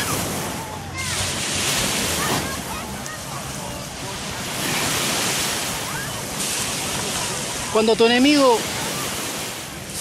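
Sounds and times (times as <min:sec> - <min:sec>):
ocean surf washing onto beach: 0:00.0 - 0:10.0.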